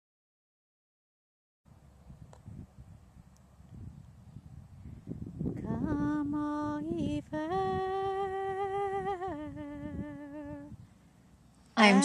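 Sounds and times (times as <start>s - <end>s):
person humming a slow tune: 5.5s - 10.8s.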